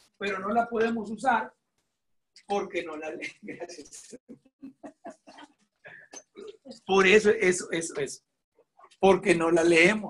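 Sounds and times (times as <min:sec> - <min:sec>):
man speaking: 0:06.8 - 0:10.0.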